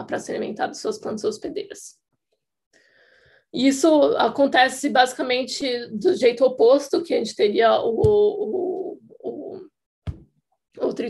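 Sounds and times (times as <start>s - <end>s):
person speaking: 3.6s - 10.2s.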